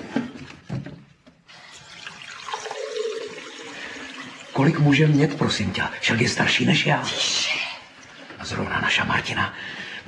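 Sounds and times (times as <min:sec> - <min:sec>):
water running: 0:01.5 - 0:09.8.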